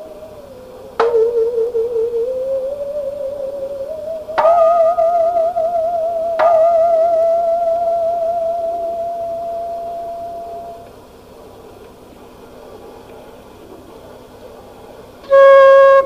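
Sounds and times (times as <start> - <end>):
flute note: 0.0 - 10.9, 15.3 - 16.0
musical saw wavering note: 0.0 - 10.9, 15.3 - 16.0.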